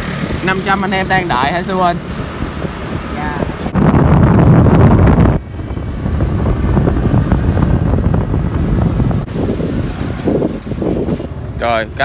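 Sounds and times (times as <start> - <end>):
motorbike engine: 0.0 - 3.7
road noise: 0.0 - 12.0
wind rushing over microphone: 0.0 - 12.0.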